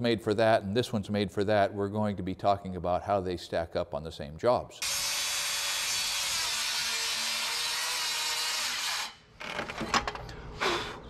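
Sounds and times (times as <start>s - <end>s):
circular saw cutting wood: 4.8s - 9.2s.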